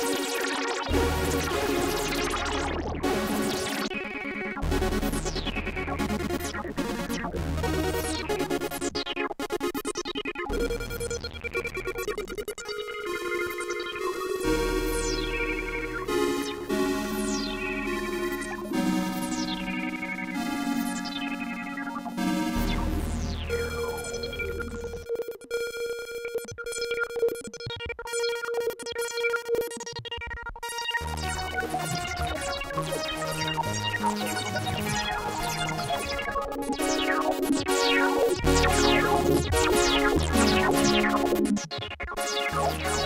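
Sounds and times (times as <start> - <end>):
synthesizer chords and notes: 0.0 - 43.0.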